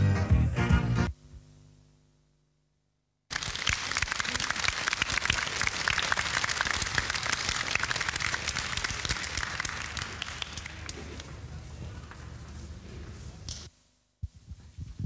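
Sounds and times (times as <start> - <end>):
audience applauding: 3.3 - 12.4.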